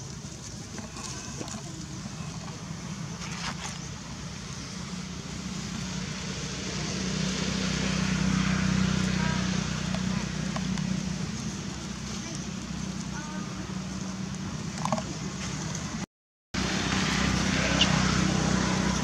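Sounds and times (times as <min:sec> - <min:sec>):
low motor hum: 0:00.0 - 0:16.0.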